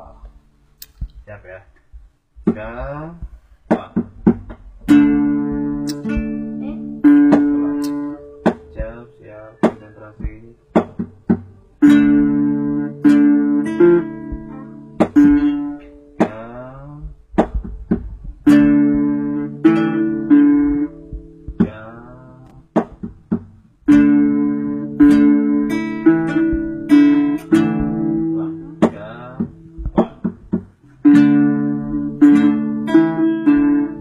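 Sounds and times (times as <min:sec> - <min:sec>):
acoustic guitar playing chords: 0:01.8 - 0:34.0.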